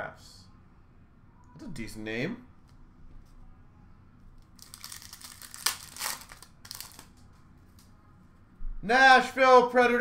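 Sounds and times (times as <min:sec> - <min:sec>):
foil wrapper tearing and crinkling: 0:04.6 - 0:07.2.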